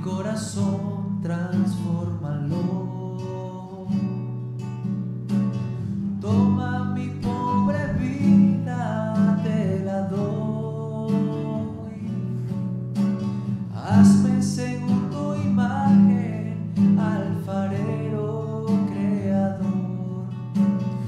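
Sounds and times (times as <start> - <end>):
acoustic guitar strumming: 0.0 - 21.0
person singing a hymn: 13.8 - 20.4.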